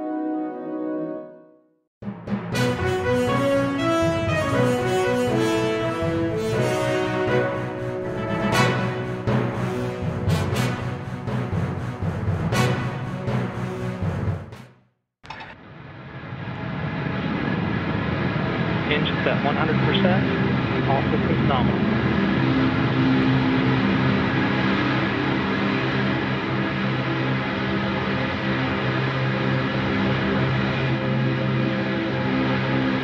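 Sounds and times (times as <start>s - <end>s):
music track: 2.2s - 14.3s, 19.0s - 33.0s
long held horn-like note: 2.6s - 10.8s
rocket engine roar: 15.7s - 33.0s.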